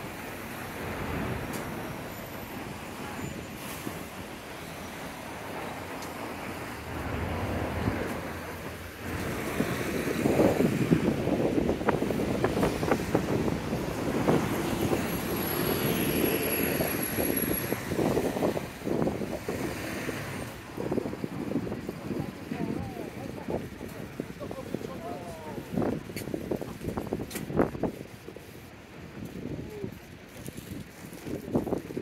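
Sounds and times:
cars passing: 0.0s - 27.8s.

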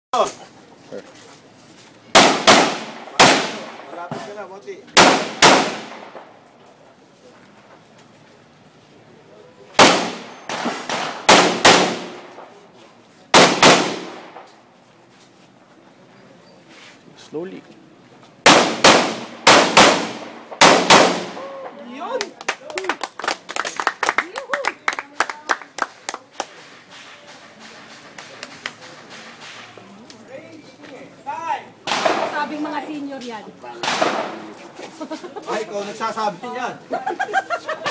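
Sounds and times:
pistol shots: 2.2s - 3.8s, 5.0s - 6.3s, 9.8s - 12.5s, 13.3s - 14.5s, 18.4s - 21.5s, 31.8s - 32.4s, 33.8s - 34.4s
voices: 5.9s - 10.5s, 21.2s - 37.9s
hand clapping: 22.2s - 29.0s.

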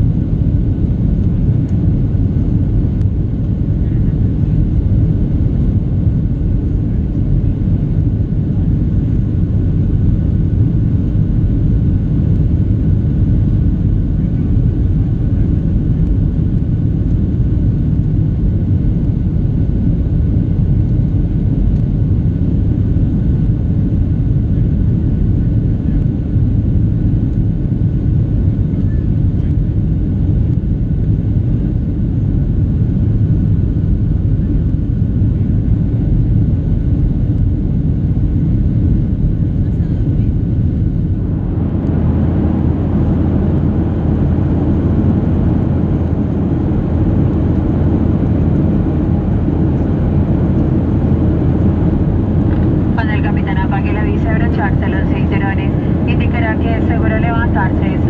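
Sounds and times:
airplane cabin drone: 0.0s - 58.0s.

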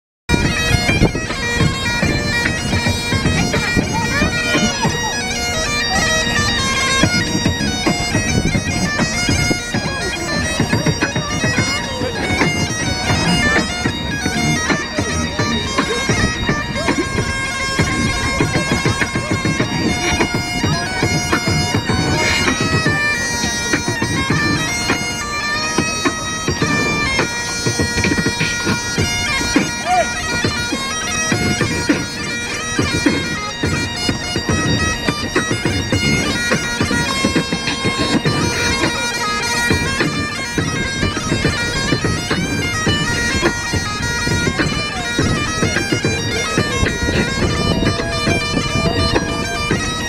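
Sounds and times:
bagpipes playing: 0.3s - 50.0s
rhythmic metal stomping: 0.3s - 50.0s.

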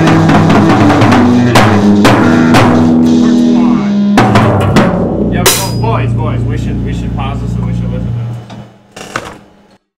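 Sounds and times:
held low bass note: 0.0s - 8.5s
voices: 1.0s - 4.1s, 5.3s - 8.4s.

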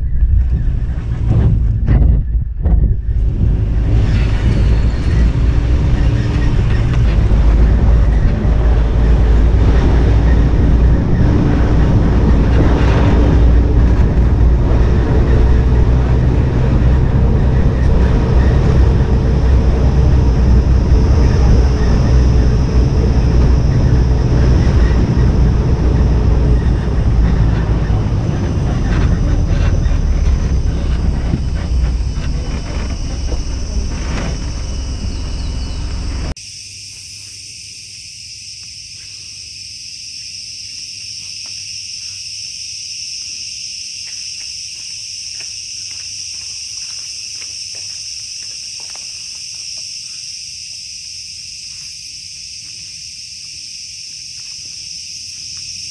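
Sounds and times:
vehicle rumble on road: 0.0s - 36.4s
wind buffeting microphone: 0.0s - 36.4s.

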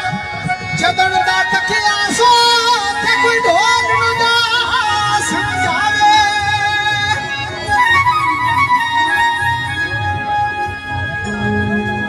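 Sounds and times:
person singing folk song: 0.8s - 7.8s.

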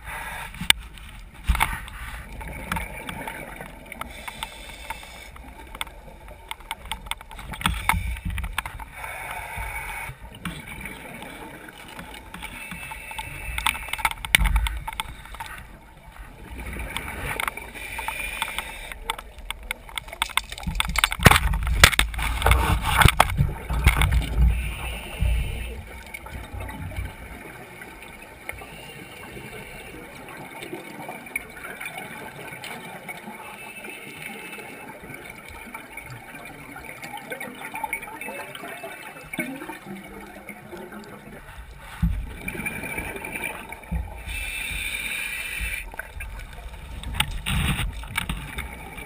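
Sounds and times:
underwater exhaust bubbles: 0.0s - 49.0s
sharp clicks and knocks: 4.0s - 8.9s, 11.9s - 15.6s, 16.9s - 24.4s.

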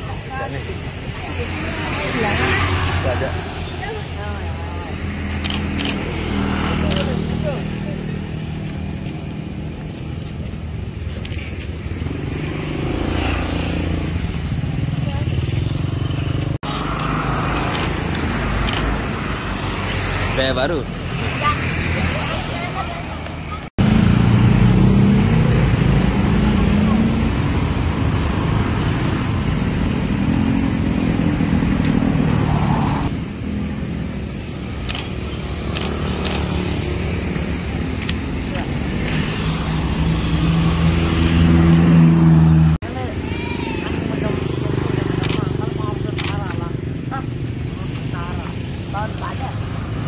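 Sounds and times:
cars passing: 0.0s - 50.0s
motor scooters passing: 0.0s - 50.0s.

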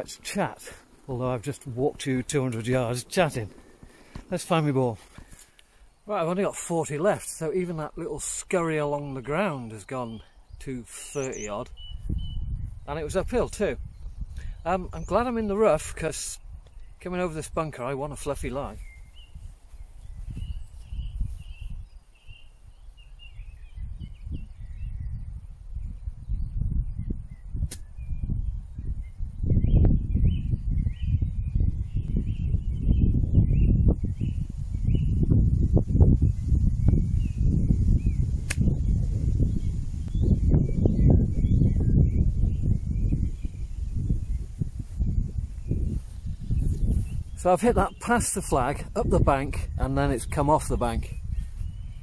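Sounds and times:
birds chirping: 0.0s - 52.0s
wind on microphone: 0.0s - 52.0s.

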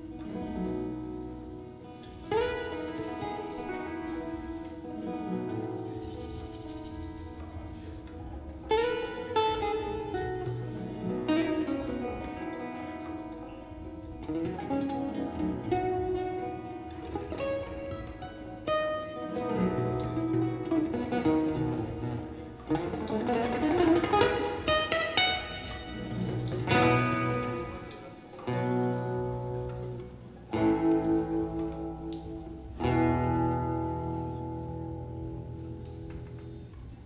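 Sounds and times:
acoustic guitars playing: 0.0s - 37.0s.

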